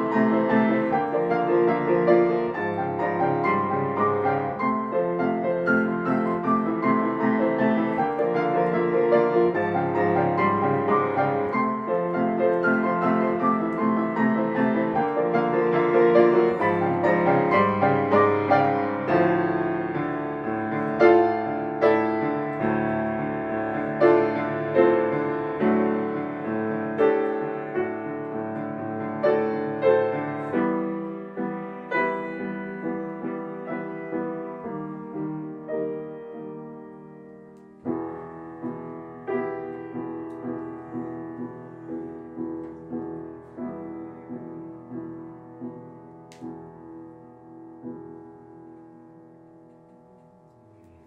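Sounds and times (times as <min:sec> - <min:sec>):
grand piano classical piece: 0:00.0 - 0:51.0.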